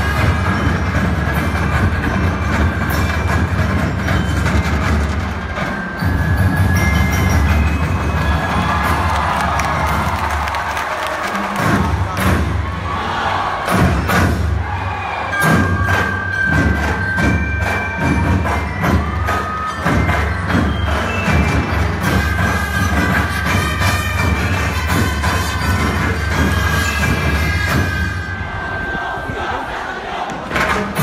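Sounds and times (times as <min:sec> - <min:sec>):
loud festival music with heavy drums: 0:00.0 - 0:28.9, 0:30.4 - 0:31.0
crowd cheering: 0:07.3 - 0:22.2, 0:27.7 - 0:31.0.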